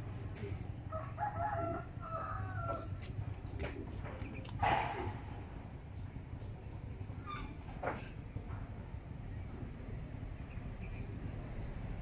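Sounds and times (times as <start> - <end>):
rooster crowing: 0.9 - 3.0.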